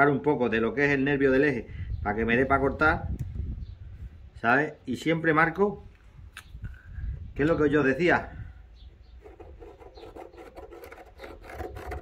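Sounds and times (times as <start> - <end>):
marker squeaking on plastic: 8.9 - 12.0.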